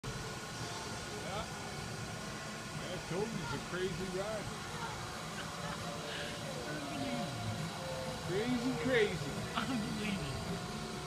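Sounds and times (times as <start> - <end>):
steady low hum: 0.0 - 11.0
faint voices: 0.1 - 11.0.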